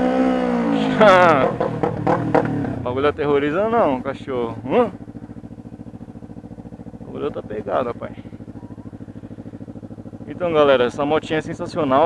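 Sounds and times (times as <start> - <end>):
motorcycle engine idling: 0.6 - 12.0.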